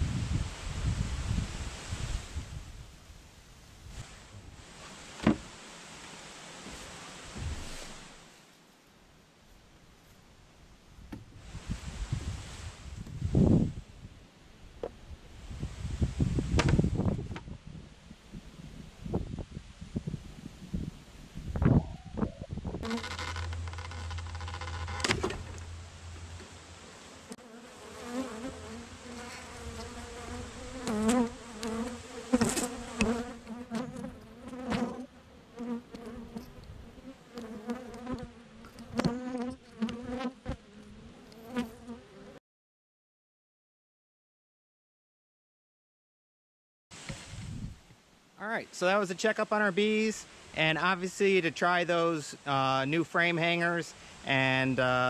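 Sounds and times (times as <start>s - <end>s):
honeybees buzzing: 22.8s - 42.4s.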